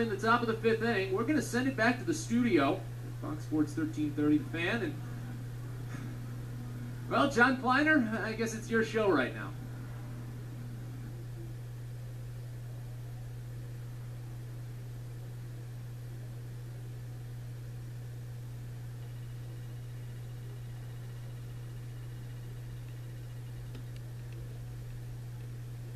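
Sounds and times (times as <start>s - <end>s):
steady low hum: 0.0s - 25.9s.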